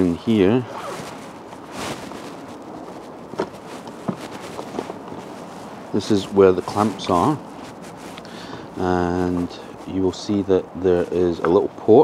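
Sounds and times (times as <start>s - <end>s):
light clicks and rustles: 0.0s - 12.0s
steady outdoor hiss: 0.0s - 12.0s.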